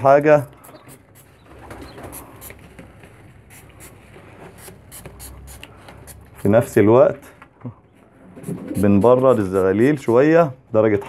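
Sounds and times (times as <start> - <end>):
birds rustling: 0.5 - 3.4
spray bottle misting bursts: 0.6 - 2.6, 4.6 - 6.5.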